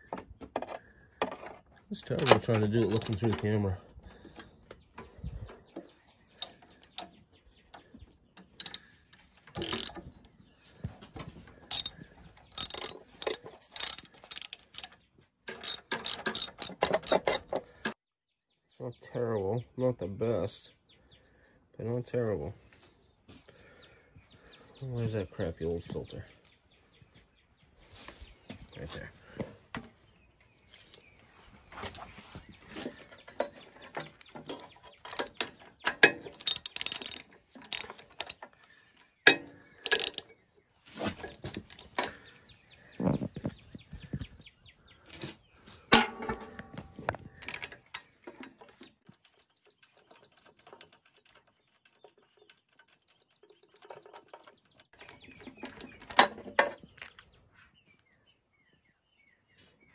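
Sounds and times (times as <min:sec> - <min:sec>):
metal tool clatter: 0:02.3 - 0:03.5, 0:06.4 - 0:07.2, 0:08.6 - 0:08.9, 0:09.6 - 0:10.0, 0:11.7 - 0:12.0, 0:12.6 - 0:17.6, 0:36.0 - 0:38.4, 0:39.3 - 0:40.3
socket ratchet clicking: 0:03.0 - 0:03.2, 0:06.4 - 0:07.1, 0:08.6 - 0:08.8, 0:09.6 - 0:10.0, 0:11.7 - 0:12.0, 0:12.6 - 0:14.9, 0:15.5 - 0:17.4, 0:36.4 - 0:38.4, 0:39.9 - 0:40.2.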